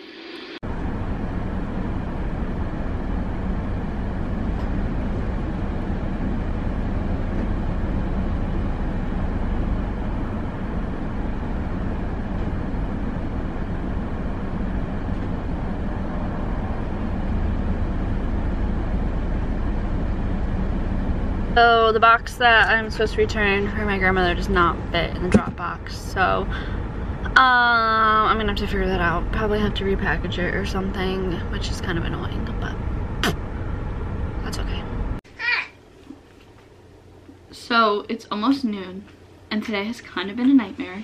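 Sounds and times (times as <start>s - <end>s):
car engine idling: 0.6s - 35.2s.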